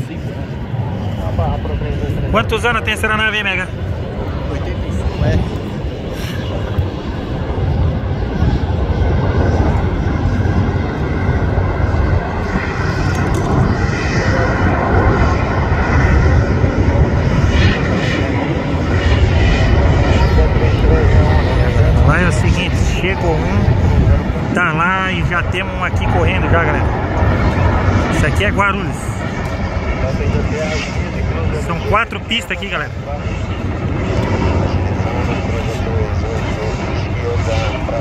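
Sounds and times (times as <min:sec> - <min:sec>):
jet engines roaring: 0:00.0 - 0:38.0.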